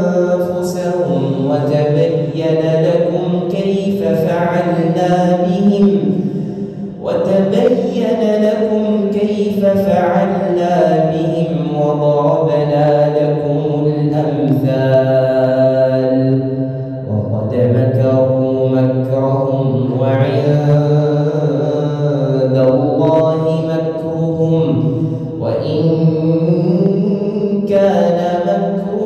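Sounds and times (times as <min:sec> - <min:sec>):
man chanting melodic recitation: 0:00.0 - 0:29.0.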